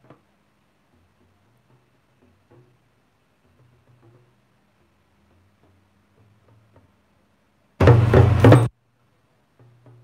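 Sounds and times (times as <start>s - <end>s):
talking drum strokes: 7.8s - 8.7s.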